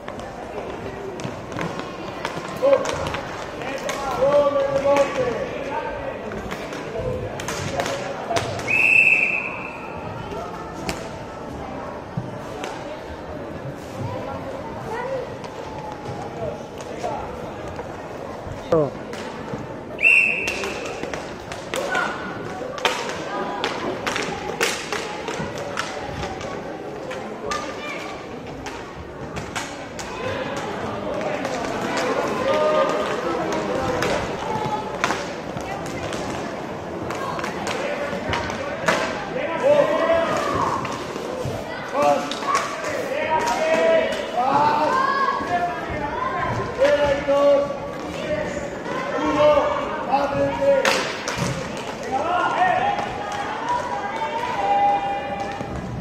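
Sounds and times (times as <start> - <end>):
whistle blast: 8.7 - 9.9, 20.0 - 20.8.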